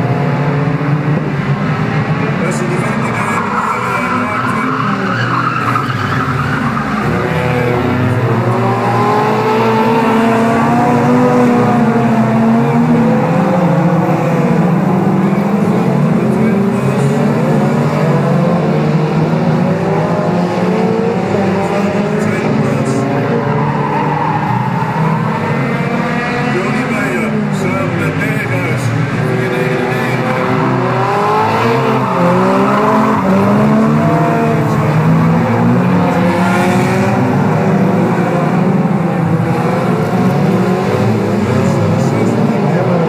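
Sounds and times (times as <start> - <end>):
racing car engines revving: 0.0 - 43.0.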